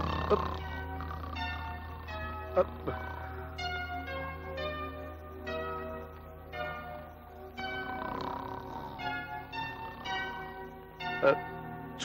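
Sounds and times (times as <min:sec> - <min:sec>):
bell-like chime notes: 0:00.0 - 0:12.0
steady low hum: 0:00.0 - 0:12.0.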